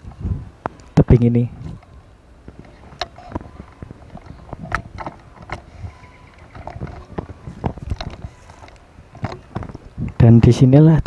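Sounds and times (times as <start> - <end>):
microphone handling noise: 0.0 - 11.0.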